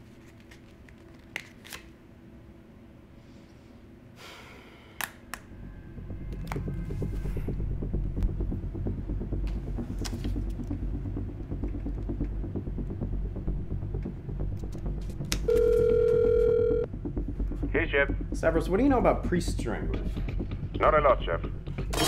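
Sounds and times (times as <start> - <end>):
low steady rumble: 5.5 - 21.9
telephone ringing tone: 15.5 - 16.9.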